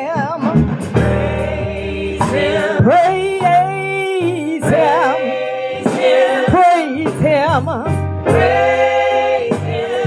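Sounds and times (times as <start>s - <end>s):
lead voice with wide vibrato: 0.0s - 7.4s
gospel choir singing: 0.0s - 10.0s.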